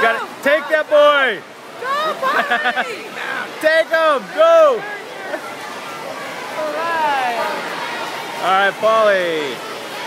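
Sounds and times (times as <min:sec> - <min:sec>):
crowd hubbub: 0:00.0 - 0:10.0
spectators shouting and cheering: 0:00.0 - 0:10.0.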